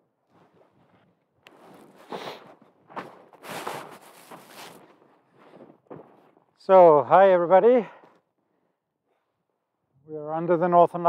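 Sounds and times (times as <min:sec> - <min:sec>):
footsteps in snow: 0:00.3 - 0:06.7.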